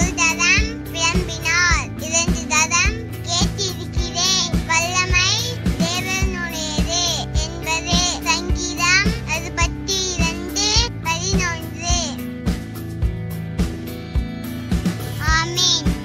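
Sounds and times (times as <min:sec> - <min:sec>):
backing track with beat: 0:00.0 - 0:16.0.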